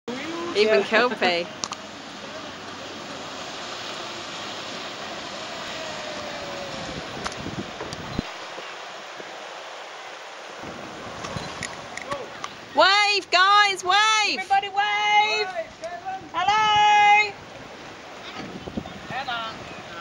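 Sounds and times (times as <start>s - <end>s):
motorboat engine passing: 0.1s - 8.2s
wind noise on microphone: 6.0s - 8.3s, 10.6s - 12.2s, 15.6s - 20.0s.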